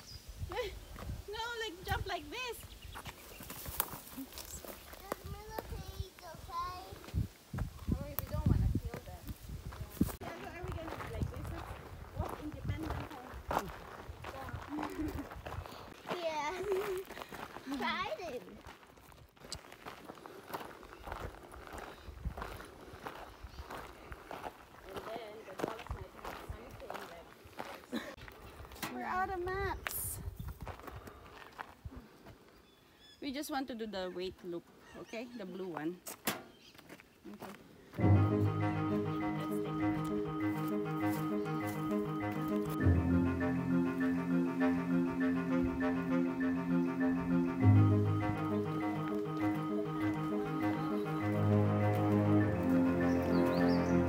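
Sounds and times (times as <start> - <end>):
footsteps on dry leaves and twigs: 2.6 - 28.8.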